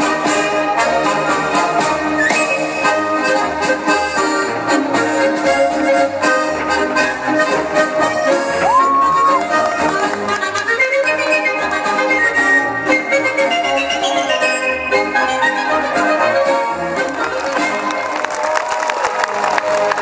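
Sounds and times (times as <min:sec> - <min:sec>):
folk dance music: 0:00.0 - 0:20.0.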